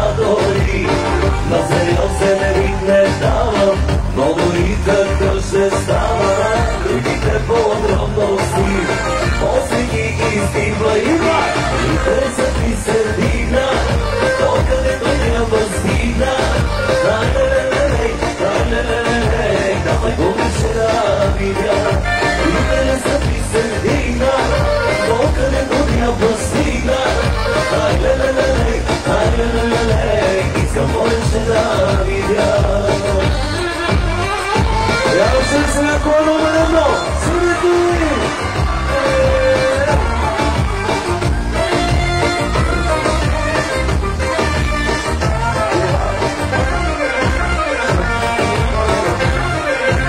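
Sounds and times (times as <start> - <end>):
man singing: 0.0 - 50.0
pop-folk band playing: 0.0 - 50.0.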